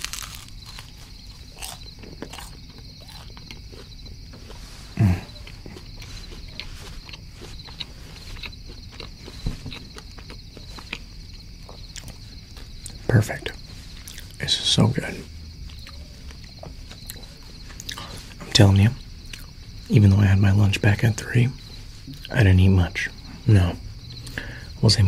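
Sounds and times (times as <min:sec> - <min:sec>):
chewing crispy bread: 0:00.0 - 0:20.0.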